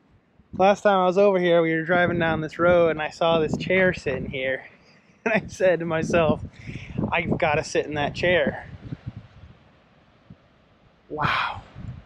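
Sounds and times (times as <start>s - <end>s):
faint low rumble: 0.5s - 9.5s.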